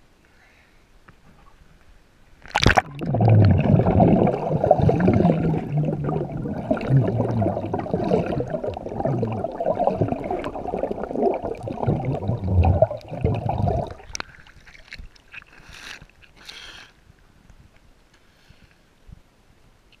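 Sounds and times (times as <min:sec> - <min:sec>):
bubbling at waterline: 0:02.5 - 0:14.6
underwater bubbling and rushing: 0:02.5 - 0:15.0.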